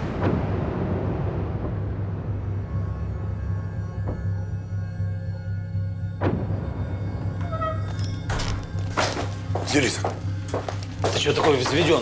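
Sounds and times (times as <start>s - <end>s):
dark droning film score: 0.0s - 12.0s
footsteps on wooden floor: 7.9s - 12.0s.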